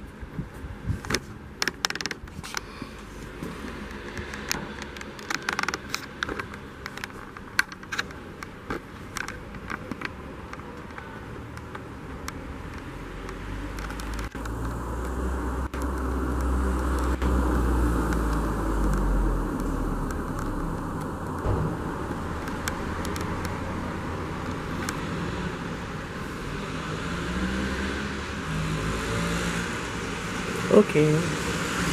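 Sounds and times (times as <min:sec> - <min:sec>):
car engine rumbling: 0:00.8 - 0:28.4.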